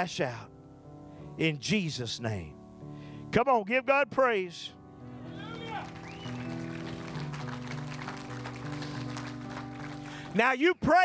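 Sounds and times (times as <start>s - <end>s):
slow keyboard chords: 0.0s - 10.6s
faint scattered clapping: 5.6s - 10.4s.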